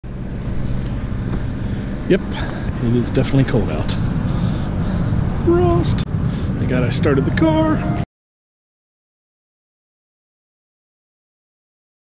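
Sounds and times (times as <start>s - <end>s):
car engine idling: 0.0s - 7.7s.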